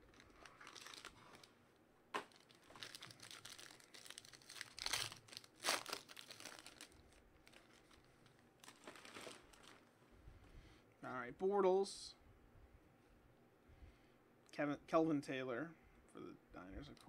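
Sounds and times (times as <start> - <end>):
foil wrapper crinkling: 0.0 - 1.5, 2.2 - 9.9.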